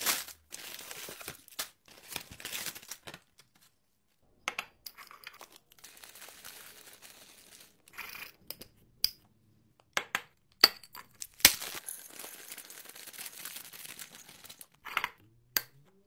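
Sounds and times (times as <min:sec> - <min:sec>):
plastic snack bag crinkling: 0:00.0 - 0:03.7, 0:05.1 - 0:08.2, 0:11.1 - 0:14.8
nuts pouring into glass jar: 0:04.9 - 0:08.4, 0:11.1 - 0:14.9.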